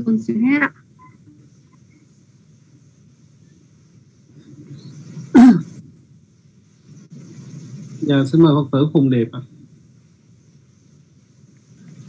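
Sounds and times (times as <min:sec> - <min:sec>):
low background hum: 0:00.0 - 0:12.0
short cough: 0:05.3 - 0:05.8.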